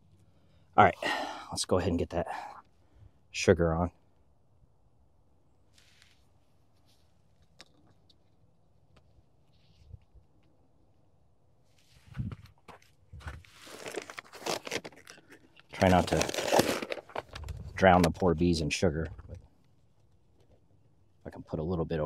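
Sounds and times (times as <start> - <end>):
plastic bag crinkling: 13.5 - 17.5.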